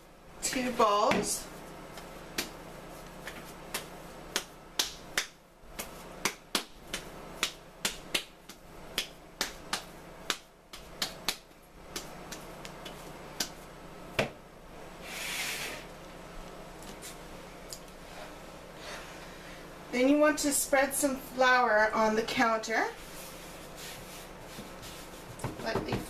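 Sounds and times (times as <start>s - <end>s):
dough clicking and smacking: 0.4s - 14.4s.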